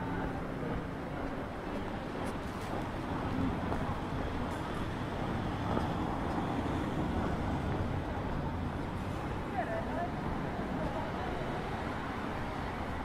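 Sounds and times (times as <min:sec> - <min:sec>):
low rumble of road traffic: 0:00.0 - 0:13.0.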